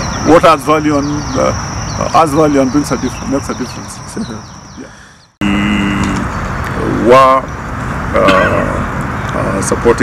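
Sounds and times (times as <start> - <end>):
road traffic noise: 0.0 - 10.0
man's voice: 0.3 - 7.5, 8.2 - 10.0
steady tone: 4.8 - 9.0.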